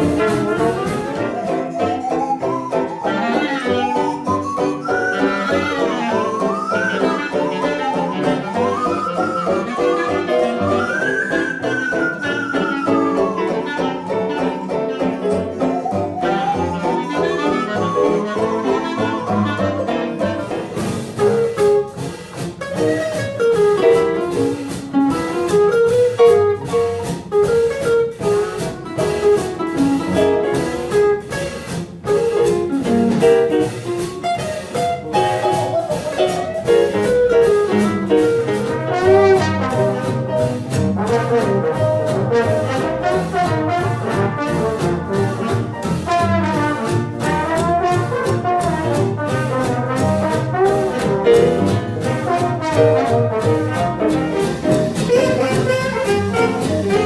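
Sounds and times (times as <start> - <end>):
jazz band playing: 0.0 - 57.0.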